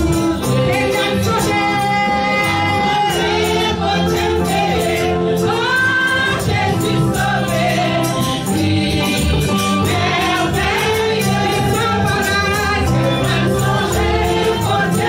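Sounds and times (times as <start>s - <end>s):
instrumental backing with steady beat: 0.0s - 15.0s
voices singing along: 0.0s - 15.0s
woman singing into a microphone: 0.0s - 15.0s.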